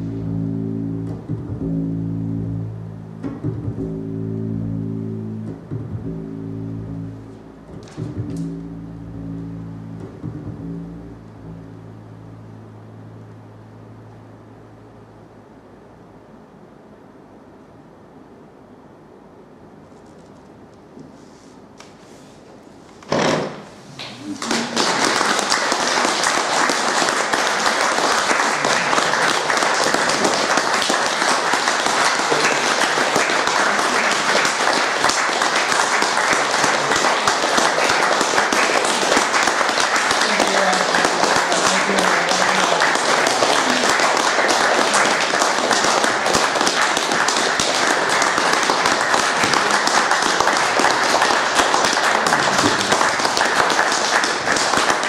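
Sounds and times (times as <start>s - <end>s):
audience applauding: 24.0s - 55.0s.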